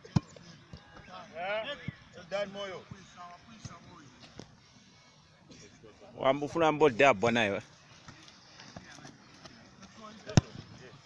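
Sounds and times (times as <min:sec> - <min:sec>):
faint distant voices: 0:00.0 - 0:11.0
football being kicked: 0:10.2 - 0:10.7.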